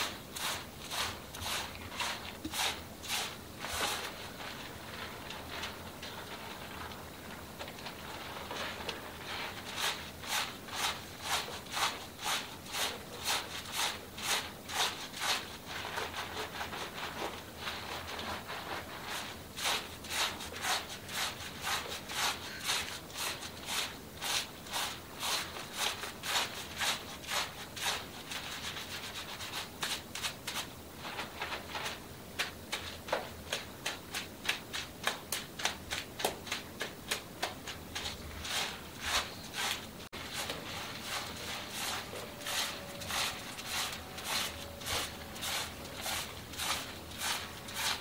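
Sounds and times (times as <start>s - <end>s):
hands scrubbing lathered hair: 0.0s - 48.0s.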